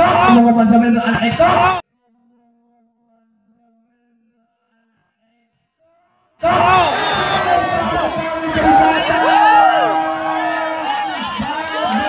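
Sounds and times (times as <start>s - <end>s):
crowd shouting and cheering: 0.0s - 1.8s, 6.4s - 12.0s.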